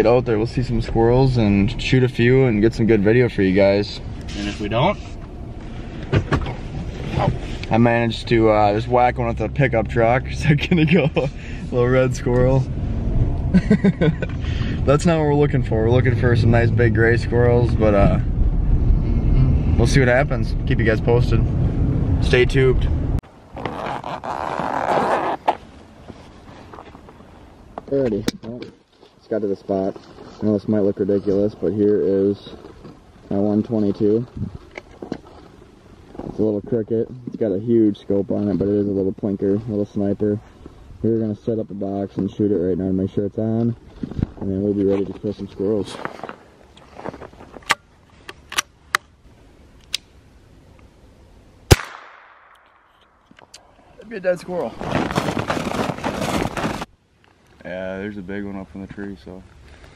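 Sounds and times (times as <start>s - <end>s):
zipper pulled open: 23.5s - 25.7s
rifle shot: 51.7s - 53.0s.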